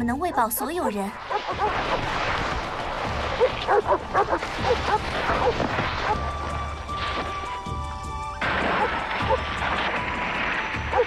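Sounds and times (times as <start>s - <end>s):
sled dogs barking and yipping: 0.0s - 7.2s, 8.4s - 11.0s.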